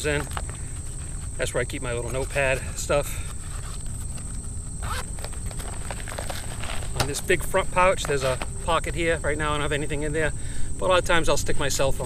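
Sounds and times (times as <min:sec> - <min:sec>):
high-pitched insect trill: 0:00.0 - 0:12.0.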